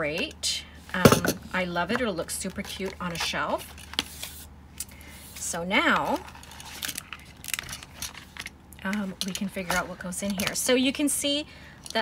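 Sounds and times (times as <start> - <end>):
plastic cover rustling: 1.5 - 4.5, 5.1 - 10.7.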